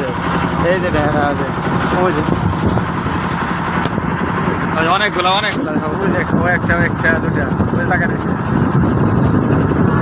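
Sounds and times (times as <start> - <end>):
boat engine droning: 0.0 - 10.0.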